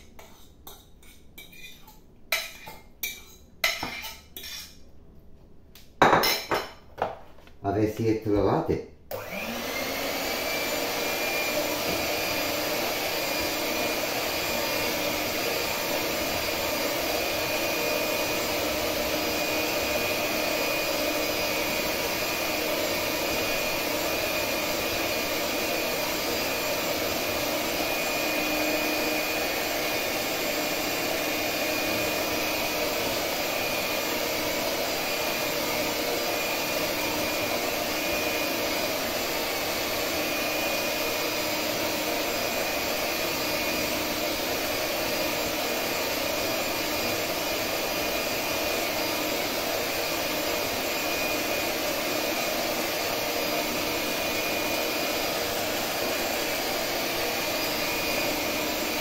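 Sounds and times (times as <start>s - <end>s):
electric hand mixer running: 9.1s - 59.0s.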